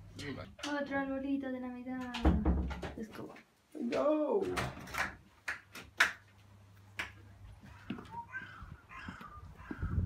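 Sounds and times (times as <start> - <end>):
footsteps on stone step: 7.5 - 10.0.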